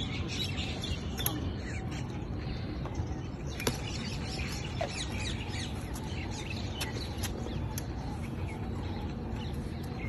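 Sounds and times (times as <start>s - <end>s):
birds chirping: 0.0s - 10.0s
steady low rumble: 0.0s - 10.0s.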